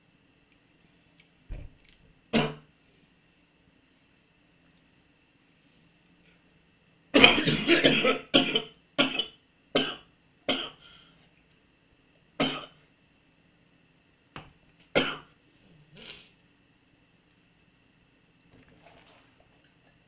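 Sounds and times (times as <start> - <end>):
man coughing: 7.2 - 10.8.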